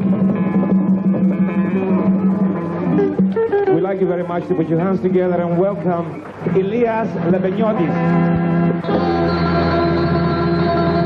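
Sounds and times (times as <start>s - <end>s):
live band music: 0.0s - 11.0s
plucked strings: 0.0s - 11.0s.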